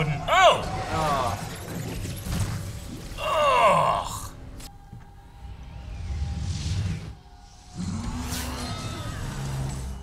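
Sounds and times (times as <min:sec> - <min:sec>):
swirling gliding tones in score: 0:04.3 - 0:10.0.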